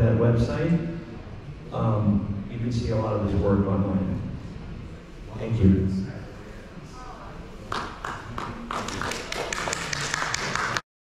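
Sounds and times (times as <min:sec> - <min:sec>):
audience applauding: 0:07.7 - 0:10.8.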